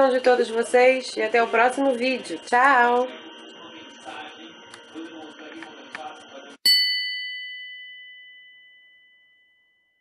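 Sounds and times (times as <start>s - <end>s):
faint background music: 0.0s - 6.6s
bright bell-like chime: 6.7s - 10.0s.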